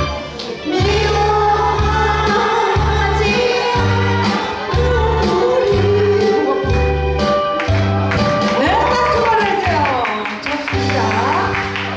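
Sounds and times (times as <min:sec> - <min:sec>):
amplified backing music: 0:00.0 - 0:11.9
woman singing into microphone: 0:00.6 - 0:06.9.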